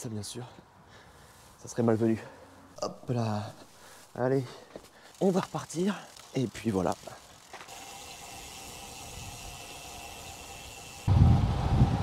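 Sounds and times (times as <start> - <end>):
wind buffeting microphone: 11.1 - 12.0.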